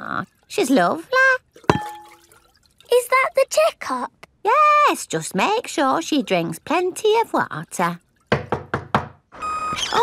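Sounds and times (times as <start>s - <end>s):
knocks on wooden door: 8.3s - 9.2s.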